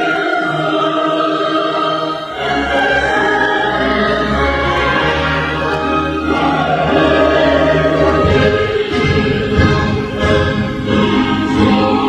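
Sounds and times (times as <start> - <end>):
choir singing: 0.0 - 12.0
orchestra playing: 2.3 - 12.0.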